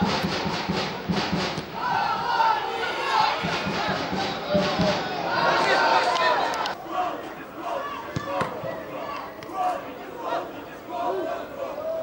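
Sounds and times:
people shouting: 0:01.8 - 0:12.0.

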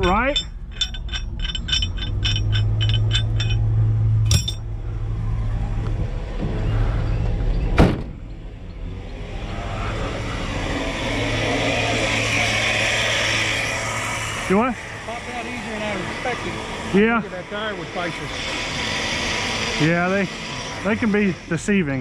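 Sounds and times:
chain and shackles clinking: 0:00.0 - 0:04.7
vehicle engine idling: 0:00.0 - 0:22.0
liftgate slamming shut: 0:07.8 - 0:08.2.

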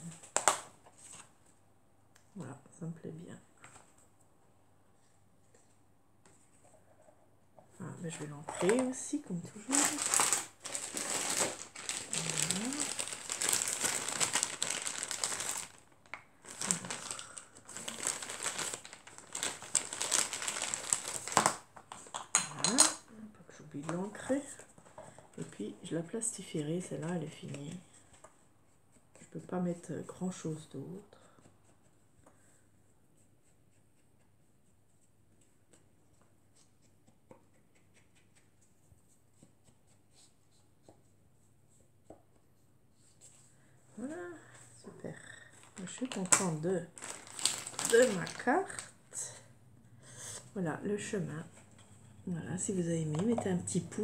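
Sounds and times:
faint handling sounds: 0:03.5 - 0:22.2
plastic bag crinkling: 0:08.5 - 0:21.7, 0:45.5 - 0:49.3.

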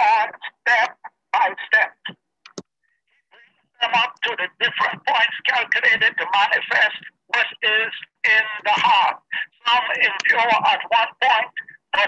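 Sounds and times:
speech over a video call: 0:00.0 - 0:12.0.

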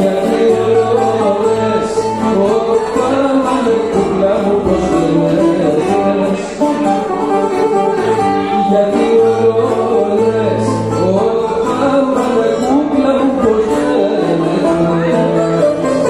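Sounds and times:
acoustic guitar: 0:00.0 - 0:16.0
bouzouki: 0:00.0 - 0:16.0
man singing: 0:00.0 - 0:16.0.

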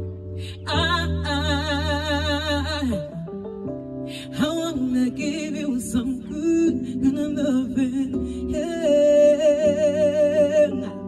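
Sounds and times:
keyboard chords: 0:00.0 - 0:11.0
woman singing: 0:00.4 - 0:03.4, 0:04.1 - 0:11.0.

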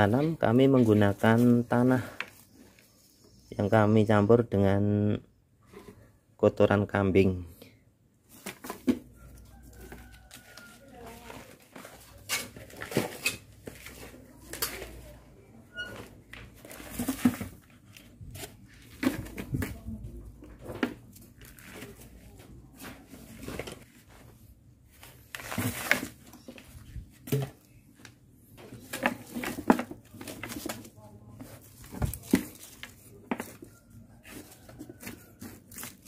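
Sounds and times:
hand mixing soil in plastic pot: 0:00.0 - 0:03.4, 0:08.3 - 0:36.0.

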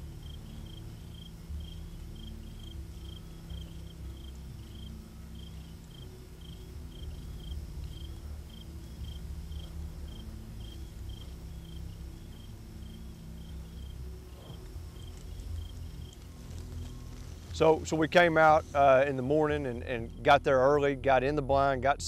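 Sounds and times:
cricket chirping: 0:00.0 - 0:21.8
steady low hum: 0:00.0 - 0:22.0.

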